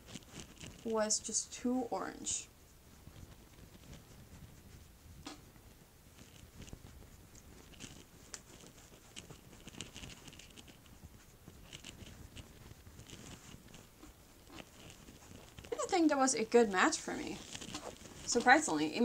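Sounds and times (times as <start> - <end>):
makeup brush brushing on skin: 0.0 - 19.0.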